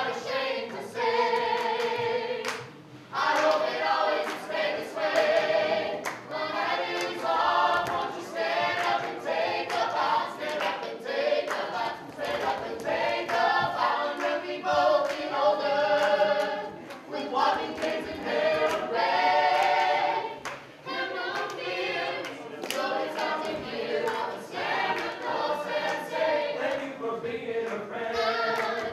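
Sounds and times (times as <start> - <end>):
group singing a cappella: 0.0 - 28.9
hand claps: 1.4 - 2.7, 3.3 - 4.5, 6.9 - 8.0, 8.8 - 15.3, 21.3 - 24.2.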